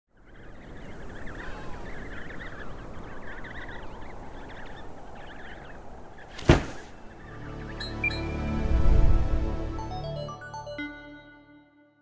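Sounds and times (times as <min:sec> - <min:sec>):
wind blowing: 0:00.1 - 0:07.6
penguins calling: 0:00.4 - 0:07.4.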